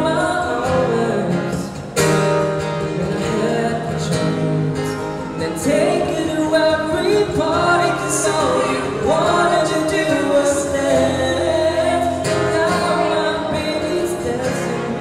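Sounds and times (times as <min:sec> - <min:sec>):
acoustic guitar: 0:00.0 - 0:15.0
man singing slow melody: 0:00.0 - 0:15.0.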